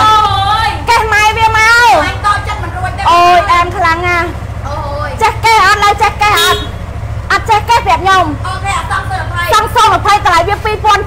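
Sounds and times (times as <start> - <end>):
woman speaking: 0.0 - 6.7, 7.3 - 11.0
steady low hum: 0.0 - 11.0.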